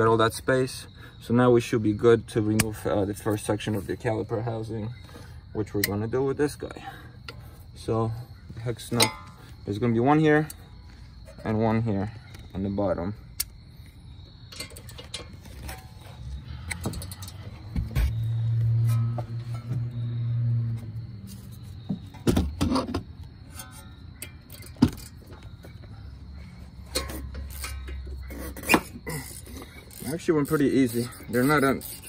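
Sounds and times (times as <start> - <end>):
ratchet clicking on bolts: 26.9 - 32.0.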